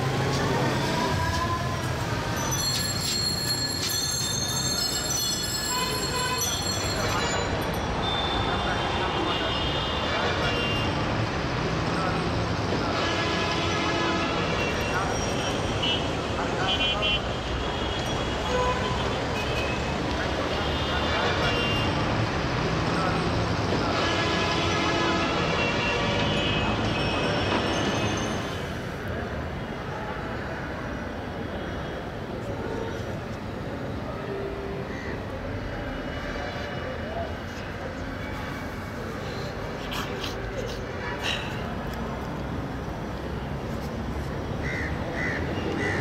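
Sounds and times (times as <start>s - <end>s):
voices: 0.0s - 13.1s
traffic: 0.0s - 46.0s
bicycle bells ringing: 2.2s - 8.7s.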